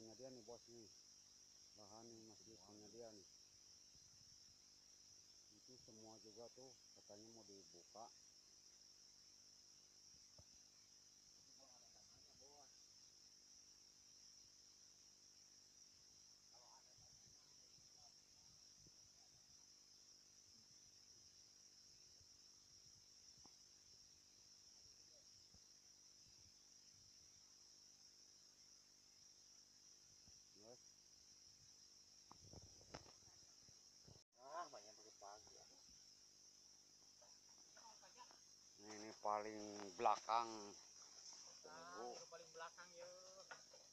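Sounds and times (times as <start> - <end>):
high-pitched insect chorus: 0.0 - 43.9.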